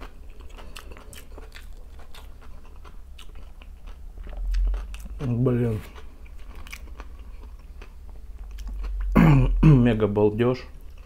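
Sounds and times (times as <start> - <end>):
person chewing food: 0.0 - 9.6, 10.7 - 11.0
steady low hum: 0.0 - 11.0.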